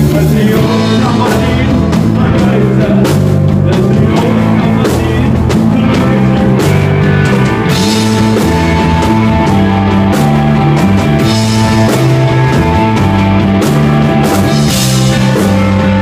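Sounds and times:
drum and cymbal hits: 0.0s - 16.0s
electric guitar: 0.0s - 16.0s
held bass guitar notes: 0.0s - 16.0s.

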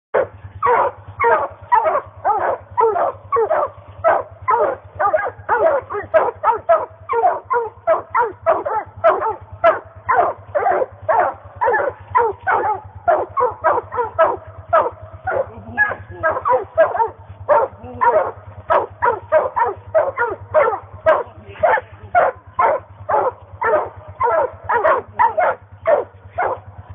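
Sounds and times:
dogs barking: 0.2s - 26.9s.

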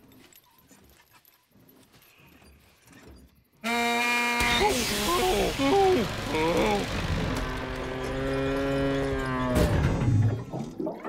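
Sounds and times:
long low moo-like groan: 5.2s - 10.0s.

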